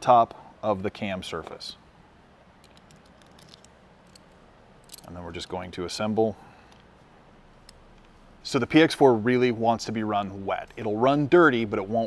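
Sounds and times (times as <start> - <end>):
room hum: 0.0 - 12.0
pistol parts clicking: 2.6 - 5.1.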